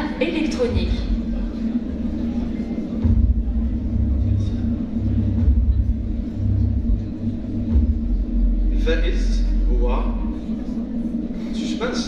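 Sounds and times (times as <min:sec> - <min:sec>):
suspense music with bass pulses: 0:00.0 - 0:12.0.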